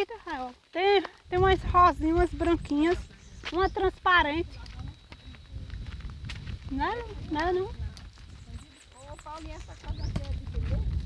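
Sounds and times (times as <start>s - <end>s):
wind rumble on microphone: 1.2s - 11.0s
faint voices: 6.7s - 11.0s.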